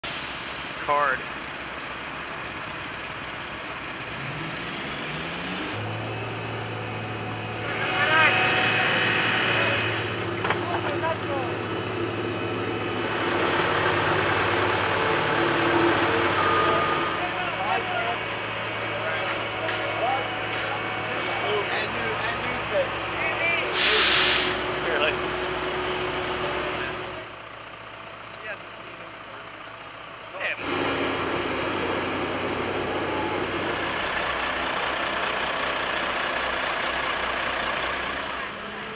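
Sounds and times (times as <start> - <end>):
diesel engines of machinery: 0.0 - 38.9
indistinct voices: 7.5 - 25.4
short loud hiss: 23.7 - 24.6.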